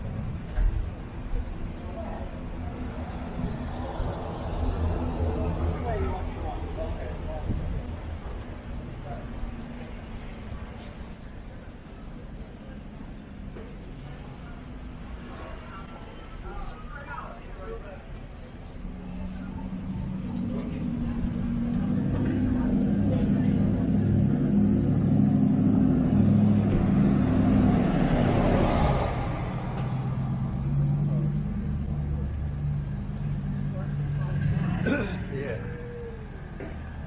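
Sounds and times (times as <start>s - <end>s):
pickup truck engine hum: 18.3s - 37.0s.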